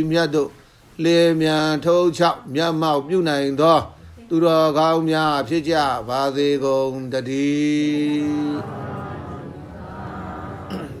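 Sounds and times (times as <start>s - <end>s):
man chanting: 4.6s - 11.0s.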